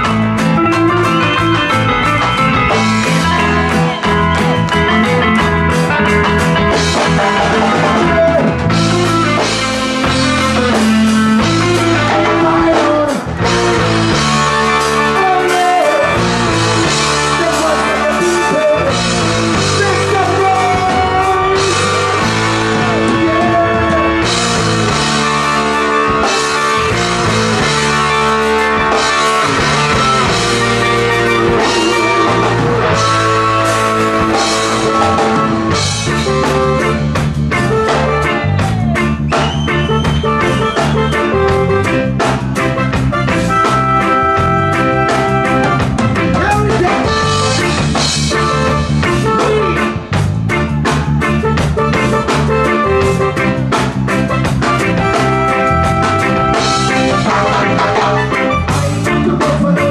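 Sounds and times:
bass guitar line: 0:00.0 - 0:59.9
drum kit beat: 0:00.0 - 0:59.9
keyboards: 0:00.0 - 0:59.9
live reggae band playing: 0:00.0 - 0:59.9.

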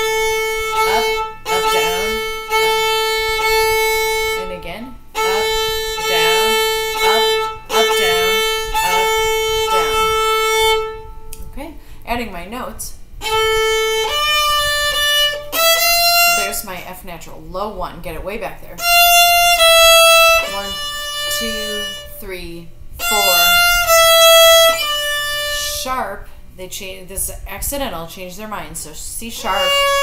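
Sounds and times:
violin bowing: 0:00.0 - 0:11.4, 0:13.2 - 0:16.8, 0:18.8 - 0:26.2, 0:29.4 - 0:30.0.

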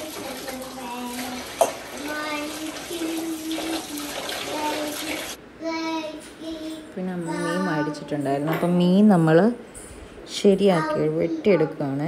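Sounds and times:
hands washing: 0:00.0 - 0:05.4
tap water running into sink: 0:00.0 - 0:05.4.

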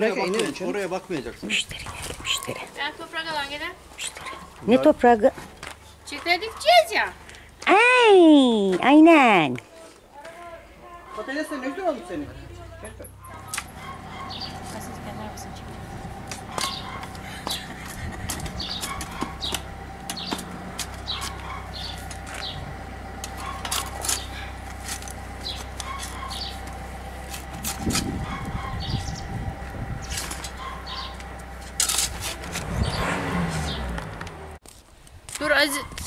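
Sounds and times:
shovel scraping soil: 0:23.2 - 0:28.2, 0:30.0 - 0:33.9.

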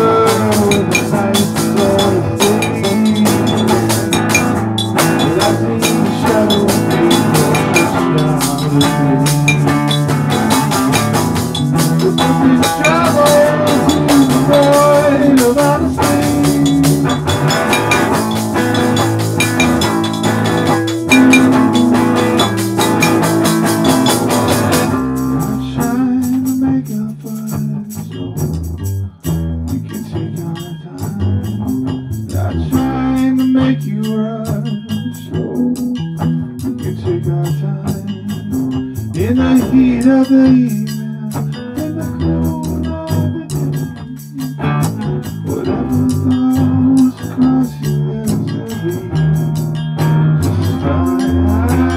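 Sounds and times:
live band playing: 0:00.0 - 0:51.9
tambourine struck with drumstick: 0:00.0 - 0:51.9.

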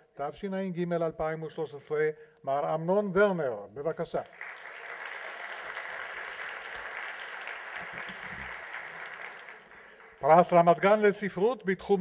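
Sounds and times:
audience applauding: 0:04.2 - 0:11.0.

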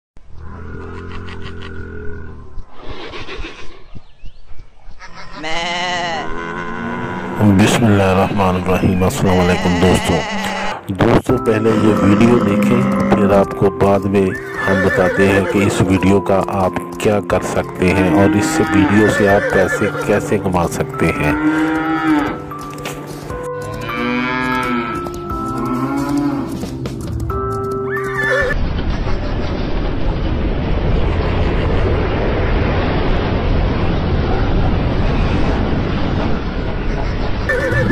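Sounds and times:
rough wild animal call: 0:00.4 - 0:04.0
low music drone: 0:06.8 - 0:10.1, 0:10.8 - 0:29.0
animal calls: 0:27.9 - 0:28.6, 0:37.5 - 0:37.9.

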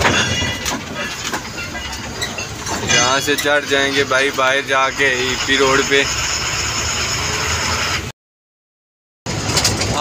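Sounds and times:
truck engine and road noise: 0:00.0 - 0:08.1, 0:09.3 - 0:10.0.

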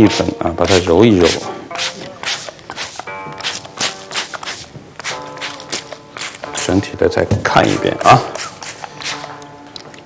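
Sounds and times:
spray bottle misting: 0:00.0 - 0:06.8, 0:07.6 - 0:09.3
soft background music: 0:00.0 - 0:10.0.

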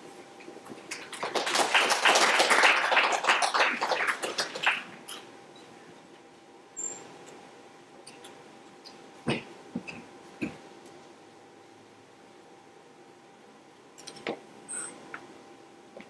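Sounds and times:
audience applauding: 0:00.9 - 0:05.0
brief high squeak: 0:06.8 - 0:07.1, 0:14.7 - 0:15.0.

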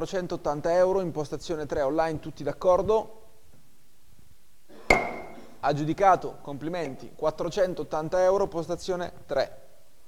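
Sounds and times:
gavel knock with ringing note: 0:04.9 - 0:05.4.

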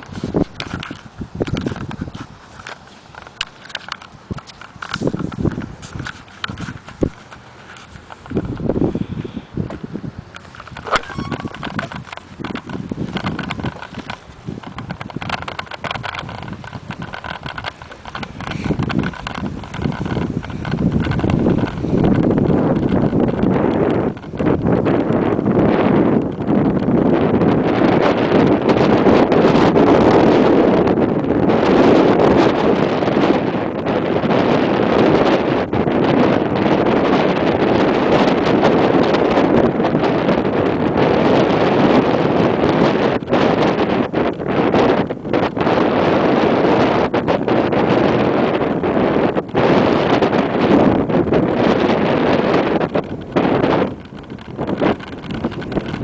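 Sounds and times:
wind rushing on microphone: 0:00.0 - 0:56.0.

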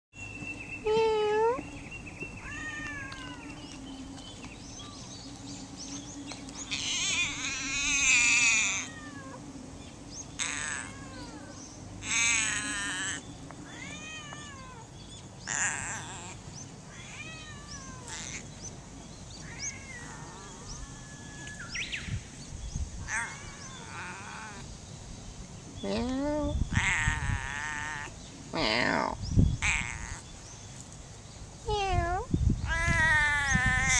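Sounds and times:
cat meowing: 0:02.4 - 0:03.4, 0:06.7 - 0:09.4, 0:10.4 - 0:14.9, 0:15.5 - 0:18.4, 0:19.4 - 0:21.6, 0:25.9 - 0:30.2, 0:31.7 - 0:33.9.

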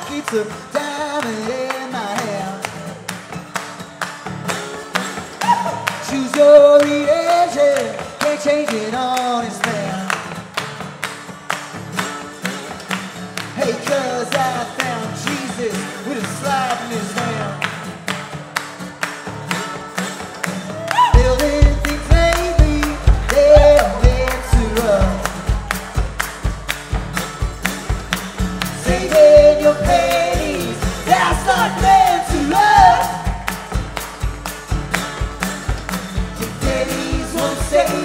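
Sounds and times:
acoustic guitar: 0:00.0 - 0:38.0
percussion beat: 0:00.0 - 0:38.0
person singing: 0:05.4 - 0:10.1, 0:20.8 - 0:26.1, 0:28.7 - 0:33.5, 0:36.4 - 0:38.0.

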